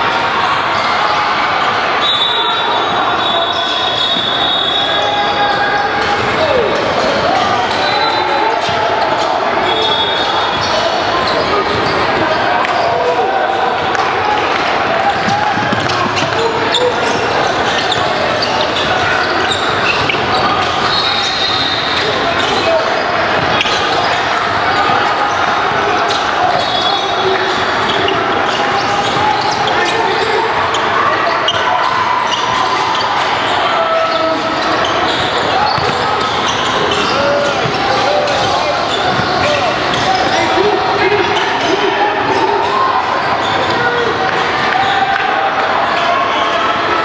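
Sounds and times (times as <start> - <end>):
sneakers squeaking: 0.1 - 47.0
basketball bouncing on court: 15.1 - 21.0, 34.8 - 40.4.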